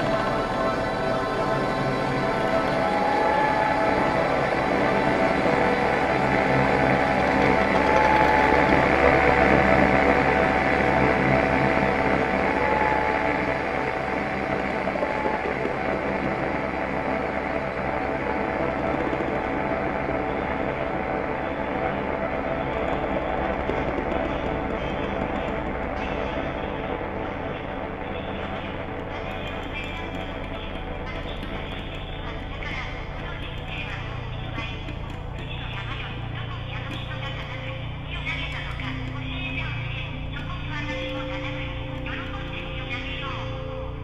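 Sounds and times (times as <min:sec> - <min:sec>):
ambient drone music: 0:00.0 - 0:44.0
low hum: 0:00.0 - 0:44.0.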